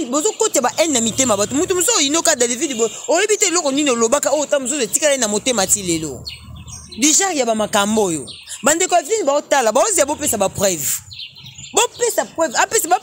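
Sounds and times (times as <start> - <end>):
birds chirping: 0.0 - 13.0
people talking quickly: 0.0 - 13.0.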